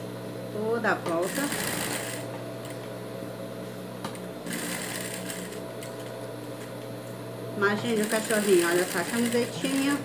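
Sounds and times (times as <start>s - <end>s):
sewing machine running: 1.2s - 2.8s, 4.4s - 5.6s, 7.8s - 10.0s.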